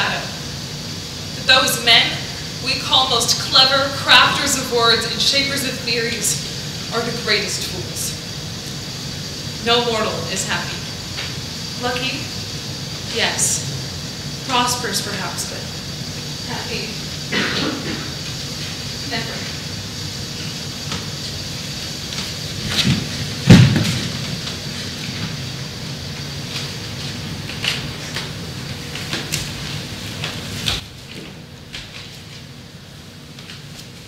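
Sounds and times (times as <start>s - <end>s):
steady low hum: 0.0s - 34.0s
knocks and thumps on wooden stage: 22.8s - 24.2s.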